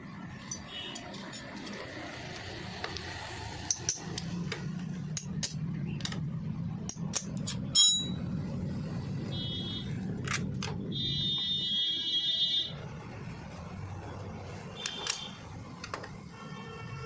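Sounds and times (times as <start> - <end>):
wrench clicking on metal bolts: 0.3 - 3.0, 3.6 - 6.2, 6.8 - 8.2, 14.8 - 16.1
low steady hum: 3.2 - 17.0.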